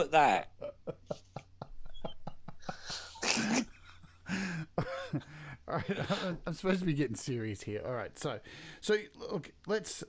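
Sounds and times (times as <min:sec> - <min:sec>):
men laughing: 0:00.6 - 0:06.6.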